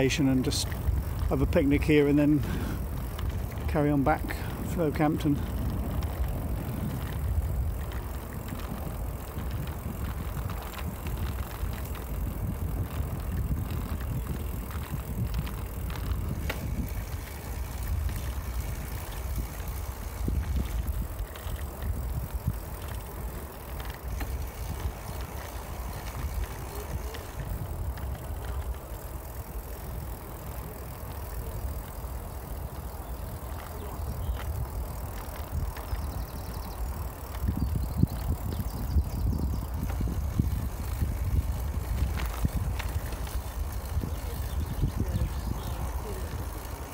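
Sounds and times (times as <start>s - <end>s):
bicycle tyres on tarmac: 0.0s - 46.9s
wind rumble on microphone: 0.0s - 46.9s.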